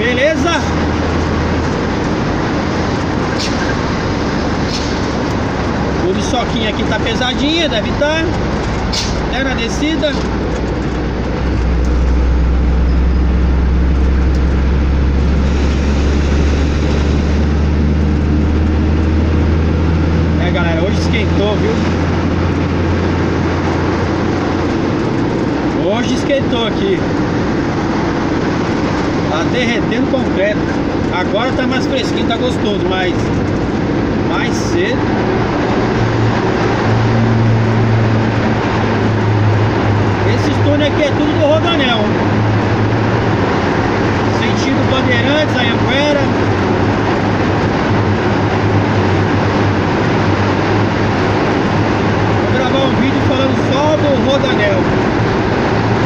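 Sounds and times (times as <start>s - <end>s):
road noise: 0.0s - 56.0s
truck engine drone: 0.0s - 56.0s
low hum: 0.6s - 25.8s.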